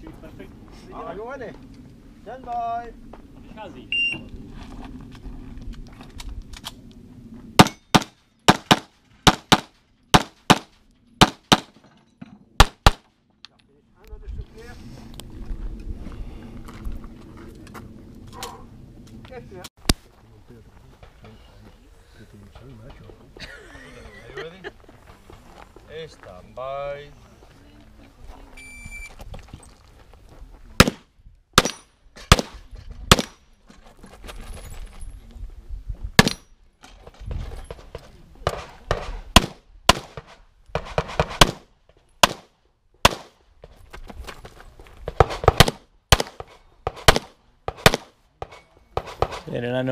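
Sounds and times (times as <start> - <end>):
pistol shots in quick pairs: 7.6 - 11.8, 30.8 - 31.0, 31.6 - 33.4, 38.5 - 43.3, 45.2 - 48.1.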